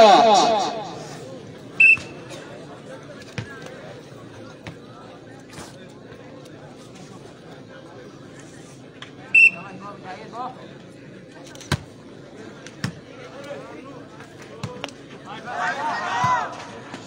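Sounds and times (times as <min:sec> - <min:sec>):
men shouting: 0:00.0 - 0:01.1, 0:15.3 - 0:16.6
referee's whistle blast: 0:01.8 - 0:02.2.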